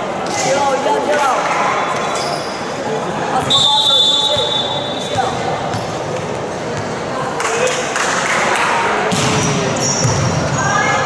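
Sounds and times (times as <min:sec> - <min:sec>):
voices calling out and chattering: 0:00.0 - 0:11.0.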